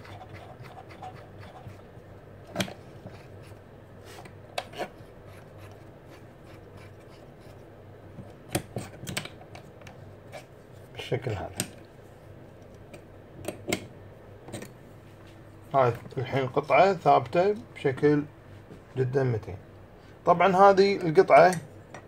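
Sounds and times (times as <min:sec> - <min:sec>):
faint low hum: 0:00.0 - 0:22.0.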